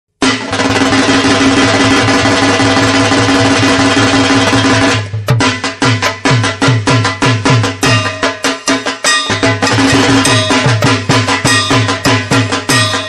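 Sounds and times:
drum strokes with dropping pitch: 0:00.2 - 0:13.0
fast drum roll: 0:00.2 - 0:13.0.

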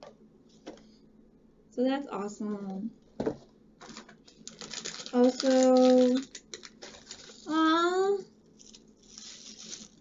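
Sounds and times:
packaging rustling: 0:03.8 - 0:07.6, 0:08.6 - 0:10.0.

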